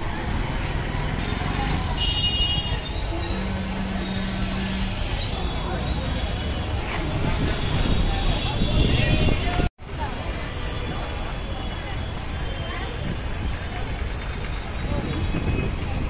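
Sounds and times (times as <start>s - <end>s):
buses and vehicles running: 0.0s - 16.0s
people's voices: 0.0s - 16.0s.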